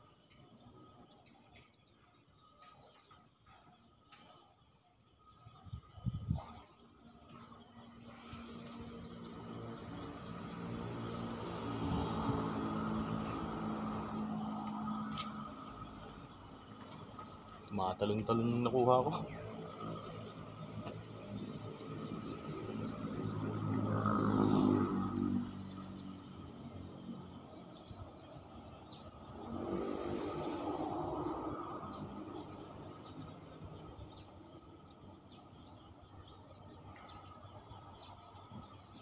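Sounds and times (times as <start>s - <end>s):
vehicles crossing overhead bridge: 7.2s - 39.0s.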